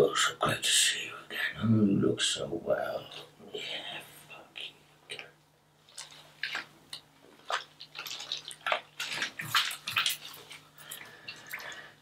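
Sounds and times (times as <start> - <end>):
bath water splashing: 5.8 - 12.0.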